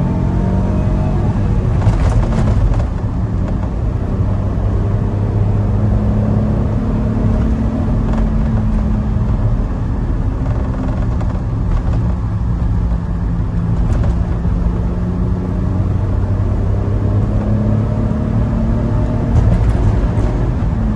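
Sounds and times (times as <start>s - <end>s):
road and tyre noise: 0.0s - 20.9s.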